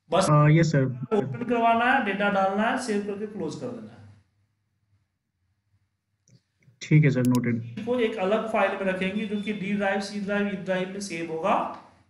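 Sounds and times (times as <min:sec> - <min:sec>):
man speaking: 0:00.0 - 0:04.1, 0:06.8 - 0:11.8.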